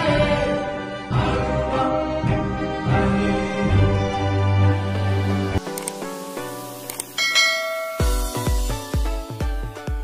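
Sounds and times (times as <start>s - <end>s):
short clicks: 5.6s - 6.1s, 6.8s - 7.2s
bright bell chime: 7.2s - 8.6s.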